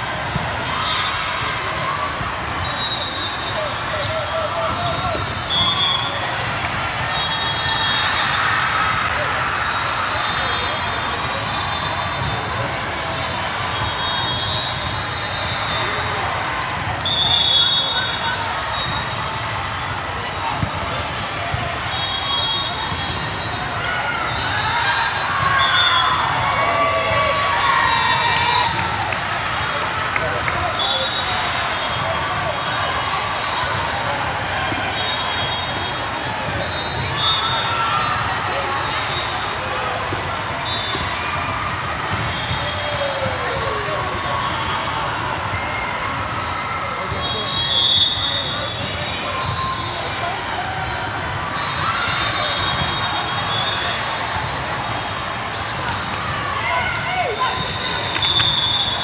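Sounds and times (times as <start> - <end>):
players' voices and shouts: 0.0 - 59.0
referee whistle blasts: 2.6 - 6.4, 7.0 - 8.4, 13.7 - 16.2, 17.0 - 19.4, 21.8 - 26.4, 30.7 - 32.7, 34.8 - 38.1, 47.0 - 49.0, 51.6 - 54.0, 57.2 - 59.0.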